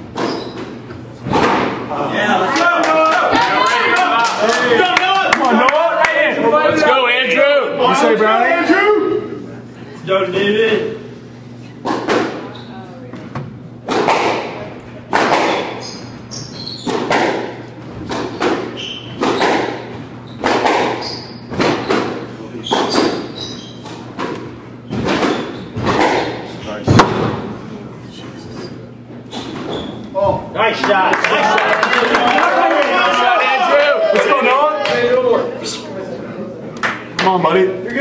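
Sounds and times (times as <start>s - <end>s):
squash ball hitting rackets and walls: 0.0s - 2.0s, 11.8s - 12.6s, 13.2s - 27.6s
shoes squeaking on hardwood: 0.2s - 1.1s, 15.5s - 17.2s, 18.0s - 24.2s, 28.6s - 30.5s.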